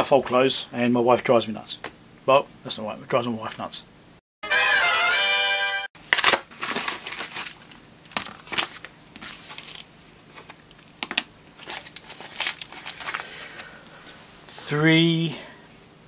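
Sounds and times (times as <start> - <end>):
musical jingle: 4.4 - 5.9
plastic packet crinkling: 6.0 - 13.7.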